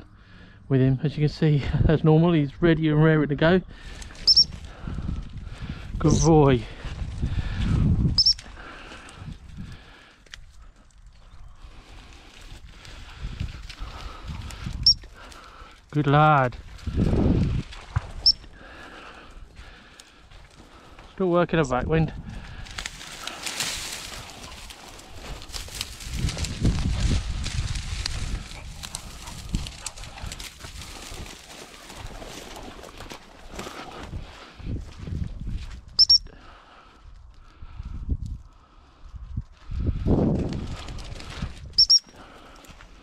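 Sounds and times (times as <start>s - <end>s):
footsteps through dry grass: 3.7s - 36.0s
dog whistle peeps: 4.2s - 4.5s, 8.2s - 8.4s, 36.0s - 36.3s, 41.8s - 42.1s.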